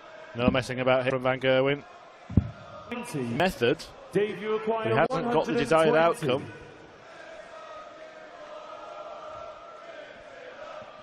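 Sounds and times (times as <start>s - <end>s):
crowd chanting in unison: 0.0s - 11.0s.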